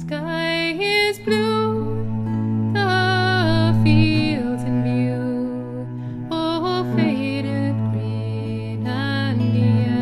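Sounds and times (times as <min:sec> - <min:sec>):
bending melody note: 0:01.3 - 0:10.0
low drone: 0:01.7 - 0:08.6.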